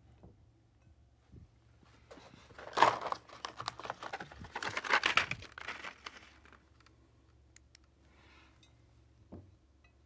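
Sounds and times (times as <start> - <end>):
faint handling sounds: 1.8 - 7.0.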